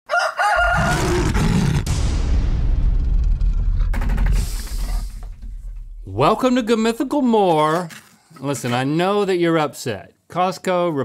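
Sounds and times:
rooster-like crow: 0.1 - 1.4
loud low rumble: 0.6 - 7.5.

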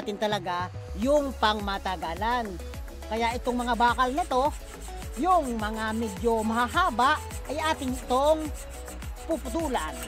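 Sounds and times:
steel rods rubbing: 3.2 - 10.0.

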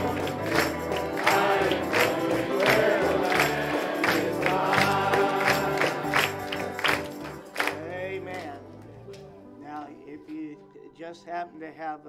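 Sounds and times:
congregation singing a hymn: 0.0 - 8.4
church band playing: 0.0 - 11.3.

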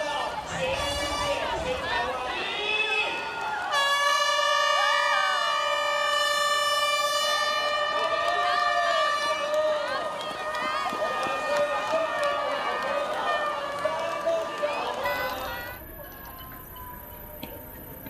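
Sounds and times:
crowd cheering: 0.0 - 18.0
start horn: 3.7 - 9.8.

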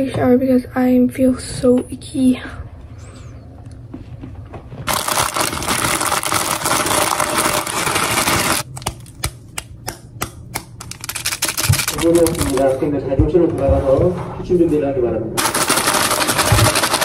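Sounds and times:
bag crinkles and clicks: 4.9 - 9.2, 10.8 - 12.8
plastic snack bag crackling: 4.9 - 9.2, 10.8 - 12.8, 15.4 - 17.0.

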